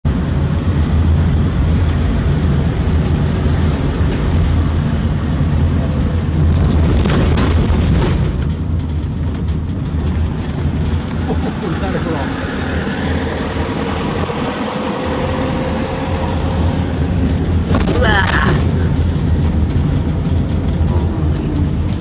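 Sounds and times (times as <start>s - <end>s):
car driving interior rumble: 0.0s - 22.0s.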